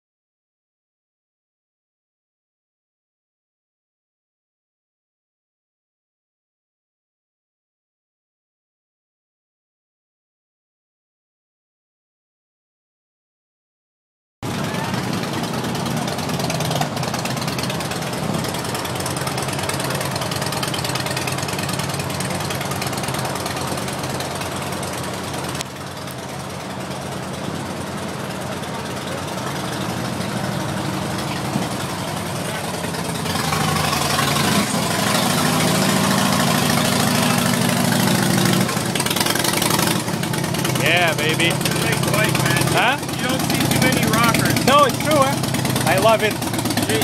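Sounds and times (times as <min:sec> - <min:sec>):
motorcycle engine idling: 0:14.4 - 0:47.0
outdoor crowd chatter: 0:14.4 - 0:47.0.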